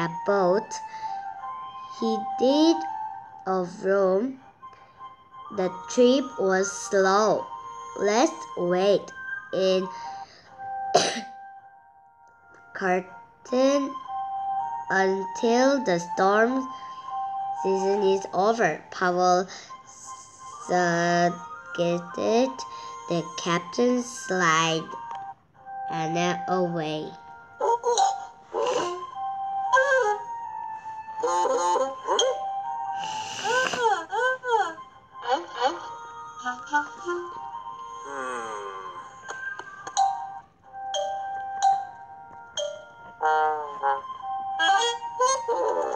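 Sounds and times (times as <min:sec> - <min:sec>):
soft music with chime tones: 0:00.0 - 0:45.9
child coughing: 0:10.9 - 0:11.4
short notes at different pitches: 0:22.9 - 0:45.9
swooping cartoon voice sounds: 0:27.6 - 0:30.3, 0:31.2 - 0:39.6, 0:43.2 - 0:45.9.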